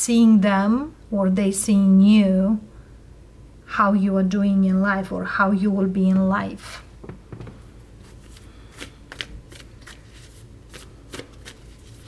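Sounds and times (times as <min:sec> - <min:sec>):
cards being shuffled: 0:08.0 - 0:12.0.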